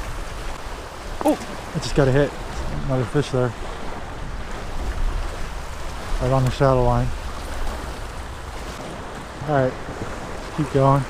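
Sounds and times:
waves lapping against pilings: 0.0 - 11.0
wind rumble on microphone: 0.0 - 11.0.

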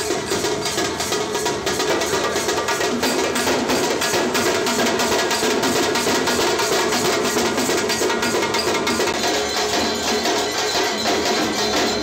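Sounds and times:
drum and percussion music: 0.0 - 12.0.

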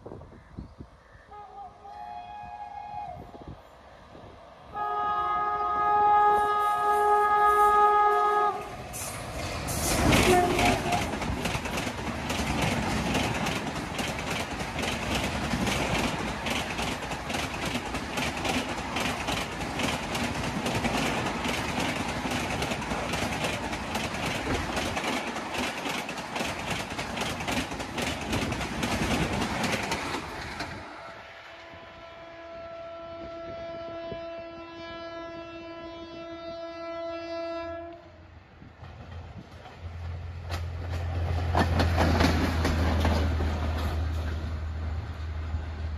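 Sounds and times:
train passing at speed: 1.3 - 45.9
train horn long note: 4.7 - 9.1, 9.7 - 11.1, 31.4 - 38.3
wheel clicks over rail joints: 10.0 - 30.8.

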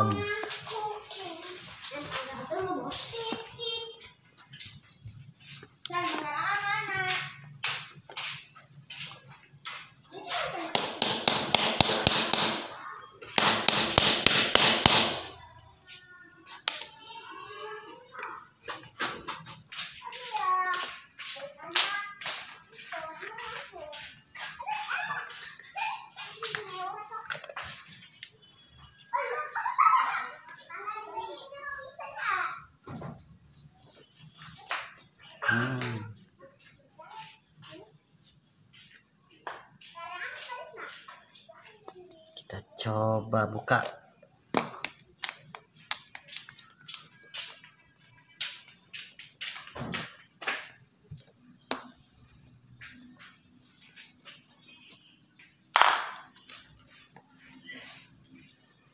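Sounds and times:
children talking: 0.0 - 13.7, 14.5 - 58.9.

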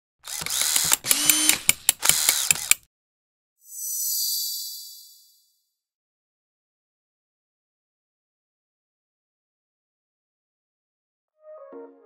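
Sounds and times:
mechanical clicks and ratcheting: 0.2 - 2.9.

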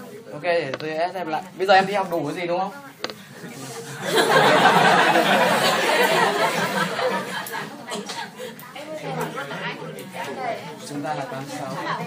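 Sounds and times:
students chattering: 0.0 - 12.0
laughter: 4.0 - 7.8.

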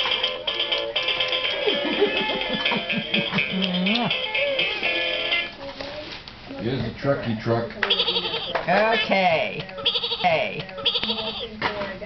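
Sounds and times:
electronic toy guitar tune: 7.9 - 11.5.

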